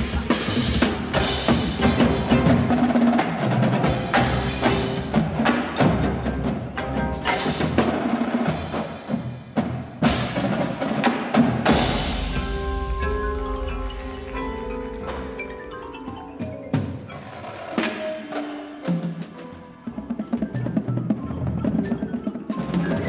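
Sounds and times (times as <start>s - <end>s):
snare drums: 0.0s - 23.0s
tenor drums: 0.0s - 23.0s
bass drums: 11.4s - 16.9s.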